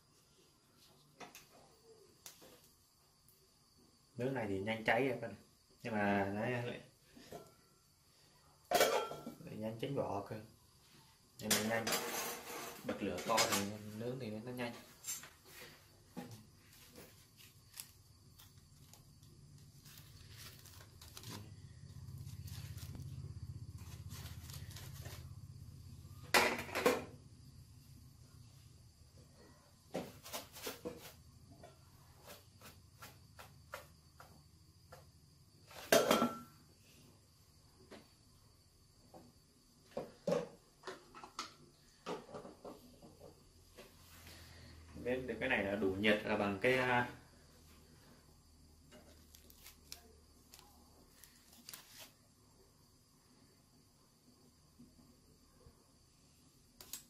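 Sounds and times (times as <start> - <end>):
foil rustling: 16.6 - 25.4, 49.1 - 52.2.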